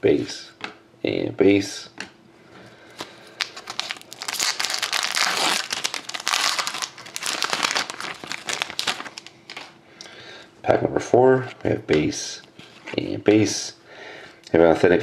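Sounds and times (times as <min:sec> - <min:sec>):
foil wrapper crinkling: 0:02.9 - 0:09.8
foil card pack tearing open: 0:03.0 - 0:09.7.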